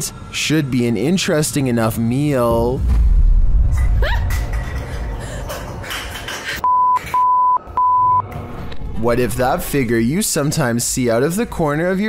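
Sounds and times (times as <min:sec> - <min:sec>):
censor bleeps: 0:06.6 - 0:08.2.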